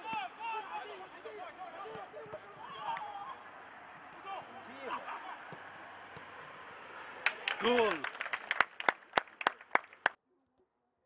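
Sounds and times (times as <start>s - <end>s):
distant players shouting: 0.0s - 8.3s.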